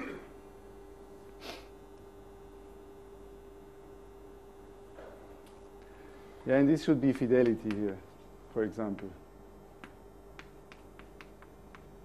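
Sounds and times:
chalk tapping on blackboard: 7.4s - 8.0s, 9.8s - 11.9s.

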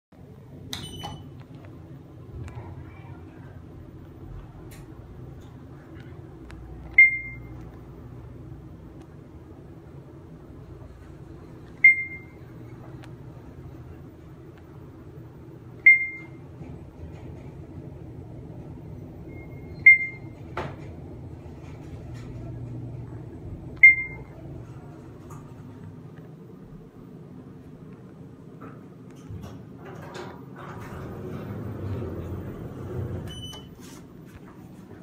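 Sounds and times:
elevator car low hum: 0.2s - 35.0s
elevator chime dinging: 0.7s - 1.3s, 7.0s - 7.6s, 11.8s - 12.8s, 15.8s - 16.4s, 19.0s - 20.6s, 23.8s - 24.3s, 33.2s - 33.8s.

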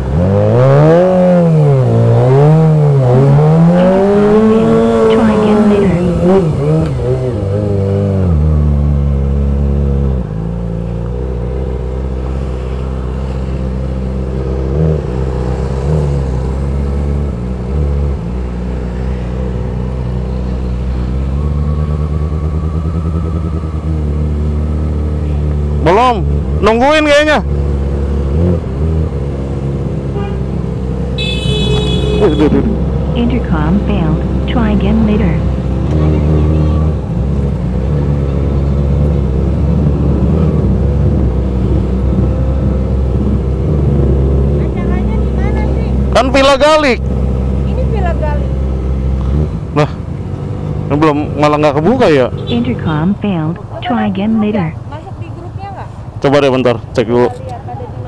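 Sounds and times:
motorcycle engine revving and idling: 0.0s - 58.0s.

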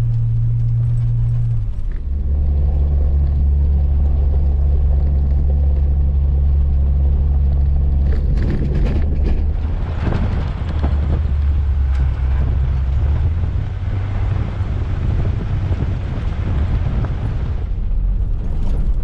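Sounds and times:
car engine and road rumble: 0.0s - 19.0s
rushing rattling noise: 0.0s - 19.0s.

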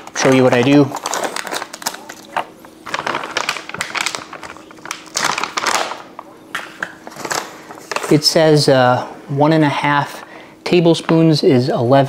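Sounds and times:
plastic pouch crinkling: 0.0s - 8.3s.

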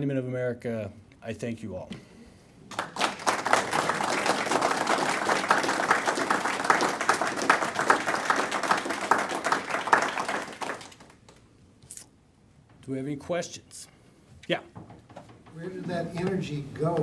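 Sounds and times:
audience clapping: 2.7s - 11.4s.

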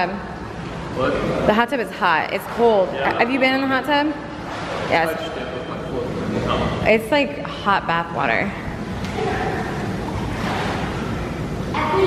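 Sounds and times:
pool water sloshing and lapping: 0.0s - 12.0s.

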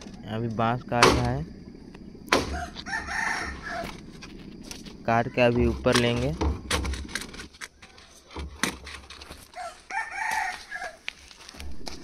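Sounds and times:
rooster crowing: 2.4s - 4.1s, 5.1s - 5.8s, 9.5s - 11.1s.

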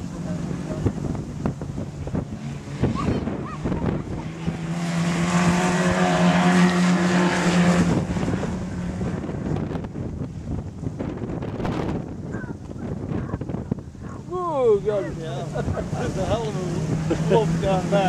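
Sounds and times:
wind buffeting microphone: 0.0s - 18.0s
race car engine passing by: 2.2s - 9.8s.

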